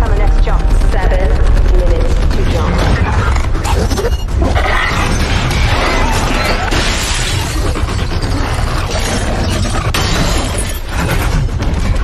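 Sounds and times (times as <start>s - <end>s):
steady low rumble: 0.0s - 6.6s
dense music score: 0.0s - 12.0s.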